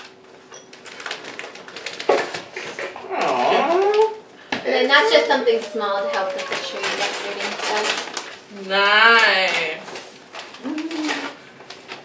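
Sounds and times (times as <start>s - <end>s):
wrapping paper tearing and crinkling: 0.0s - 4.2s, 5.5s - 12.0s.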